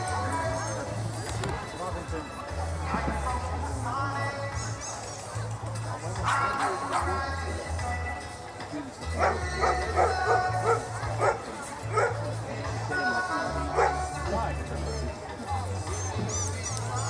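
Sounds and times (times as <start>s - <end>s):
background music with bass line: 0.0s - 17.0s
dog barking: 9.2s - 12.2s, 13.7s - 14.1s.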